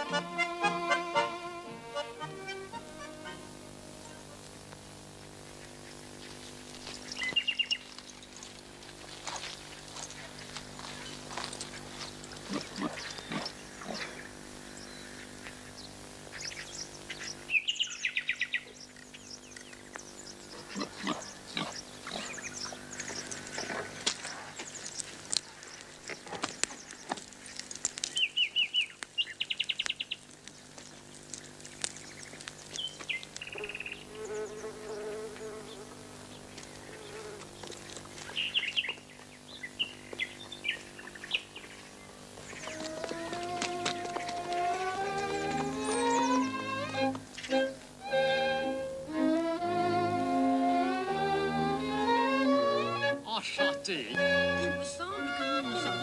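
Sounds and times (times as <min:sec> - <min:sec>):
insects chirping in pulsed bursts: 0:00.0 - 0:26.0, 0:30.6 - 0:56.0
steady low hum: 0:00.0 - 0:27.5.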